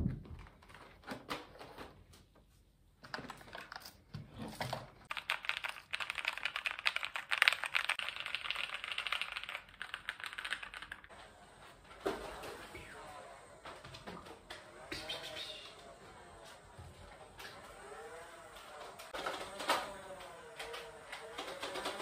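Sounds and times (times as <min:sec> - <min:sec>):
computer keyboard typing: 0:05.1 - 0:11.1.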